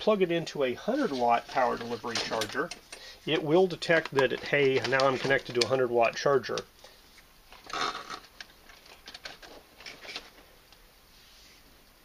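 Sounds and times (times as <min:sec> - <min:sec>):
cable rustling: 0:00.9 - 0:06.7, 0:07.5 - 0:10.5.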